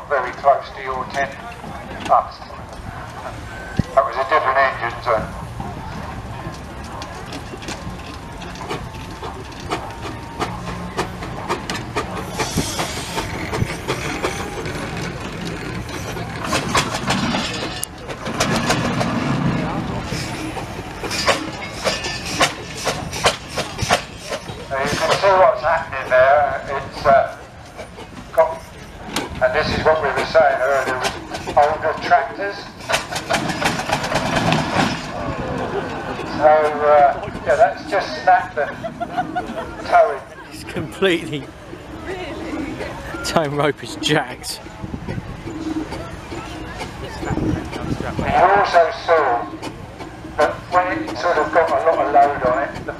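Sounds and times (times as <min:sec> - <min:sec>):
people talking: 0:00.0 - 0:07.7, 0:24.7 - 0:27.4, 0:28.4 - 0:32.8, 0:35.4 - 0:44.6, 0:45.8 - 0:49.6, 0:50.4 - 0:52.9.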